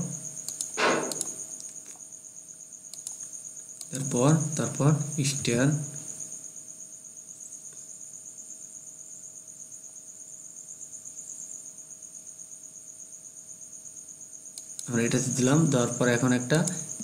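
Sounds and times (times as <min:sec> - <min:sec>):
faint low hum: 0:00.0 - 0:06.4
insect chirping trill: 0:00.0 - 0:17.0.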